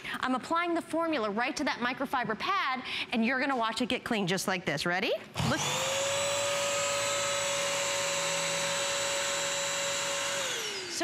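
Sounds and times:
vacuum motor whining: 5.4s - 11.0s.

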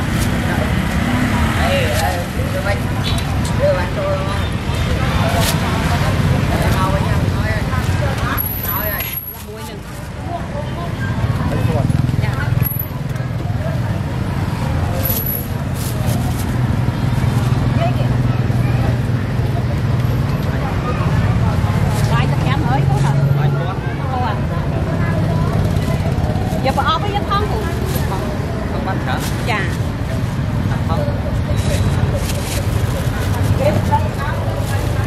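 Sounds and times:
people talking: 0.0s - 35.0s
road traffic: 0.0s - 35.0s.

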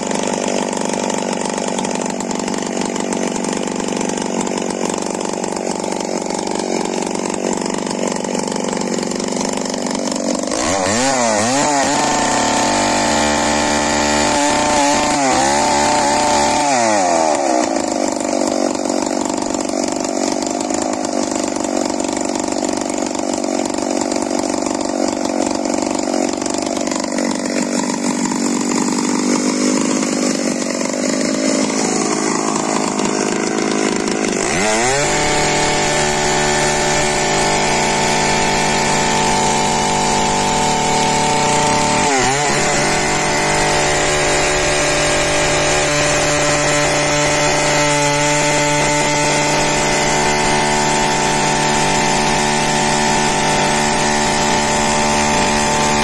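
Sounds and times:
chainsaw cutting log: 0.0s - 56.0s.

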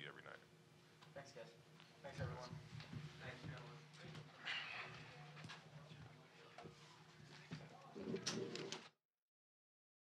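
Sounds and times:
low murmur of voices: 1.5s - 8.9s.

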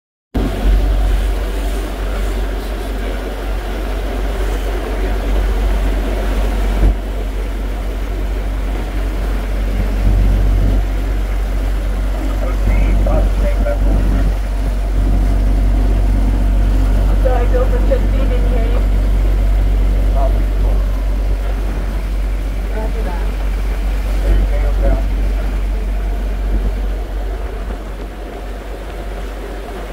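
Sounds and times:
ferry motor rumbling: 0.3s - 29.9s
water rushing along hull: 0.4s - 29.9s.

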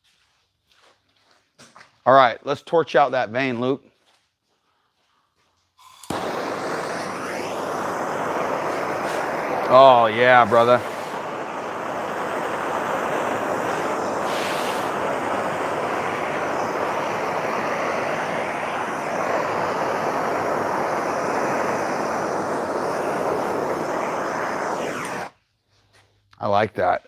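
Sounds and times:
gas torch flame rushing: 5.8s - 25.4s.

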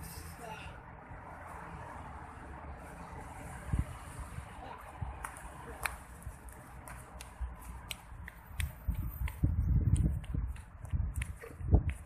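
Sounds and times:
footsteps on paving stones: 2.8s - 12.0s
wind buffeting microphone: 3.3s - 5.4s, 6.1s - 12.0s.

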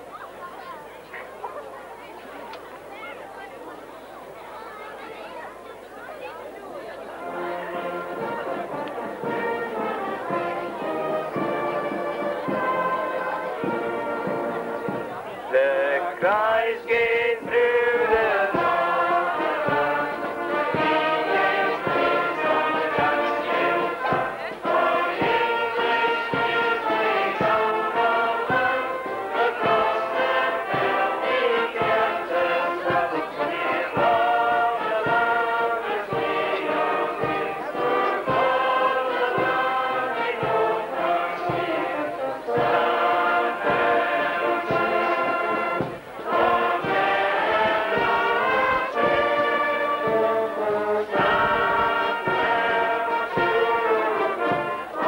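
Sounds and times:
brass band playing: 7.1s - 55.0s
crowd singing together: 7.2s - 55.0s.

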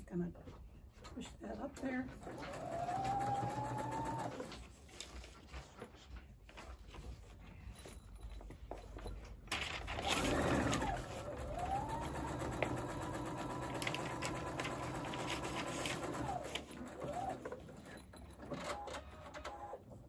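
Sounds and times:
sewing machine motor whine: 2.3s - 4.5s, 10.1s - 17.5s.

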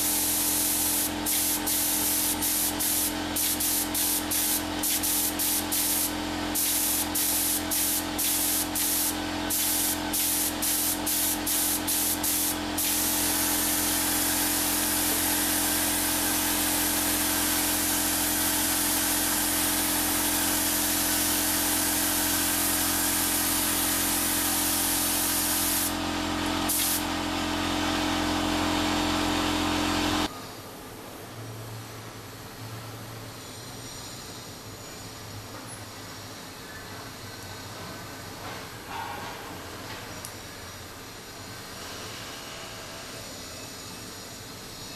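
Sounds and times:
air spray gun hissing: 0.0s - 30.3s.

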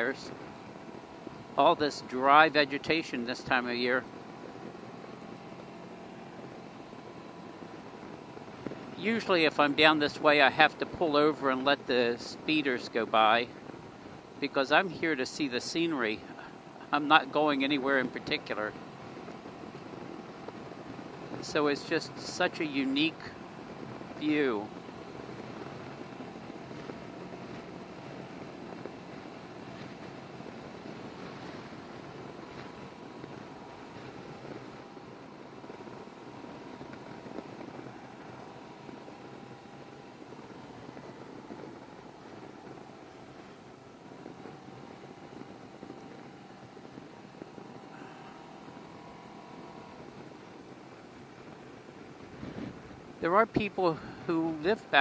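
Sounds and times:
three-wheeler engine cruising: 0.0s - 55.0s.

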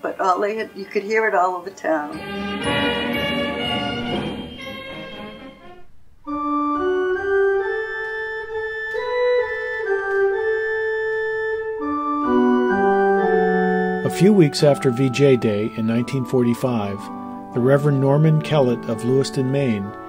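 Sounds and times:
organ chords: 2.1s - 20.0s.

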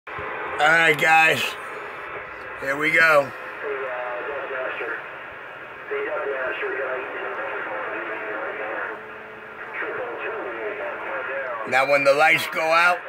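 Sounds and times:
radio static hiss: 0.1s - 13.0s
voices over radio speaker: 0.3s - 13.0s.

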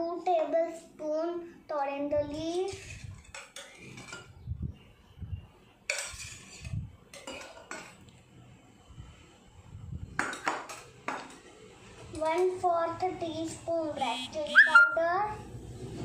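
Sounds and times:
spoon scraping metal bowl: 2.6s - 4.3s, 5.9s - 7.9s.

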